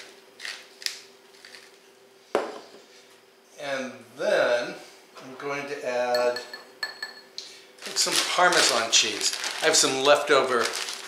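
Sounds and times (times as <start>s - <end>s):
faint steady hum: 0.0s - 11.0s
kitchen item knocking on hard surface: 2.4s - 2.6s.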